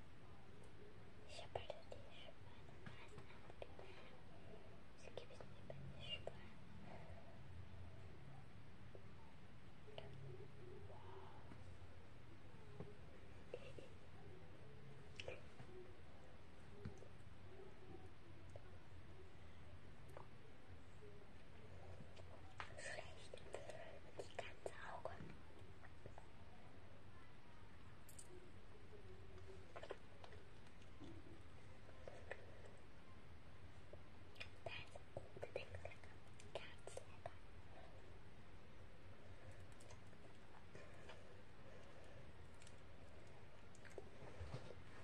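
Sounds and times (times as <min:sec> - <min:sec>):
soft whispering: 0:00.0 - 0:45.0.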